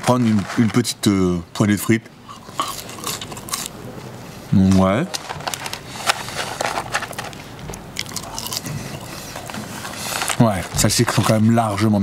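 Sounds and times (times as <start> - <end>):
paper carton crackling: 0.0 - 1.1, 5.0 - 7.6, 8.6 - 12.0
chewing fries: 2.3 - 3.8, 5.2 - 11.4.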